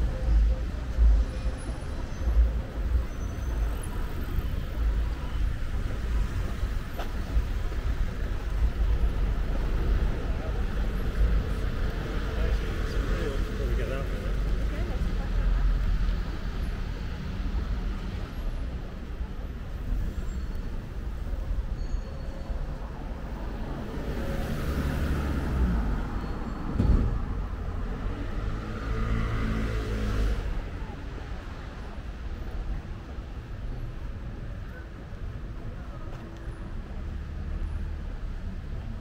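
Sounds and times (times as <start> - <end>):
road vehicles passing: 0.0 - 39.0
sharp thump: 26.7 - 27.2.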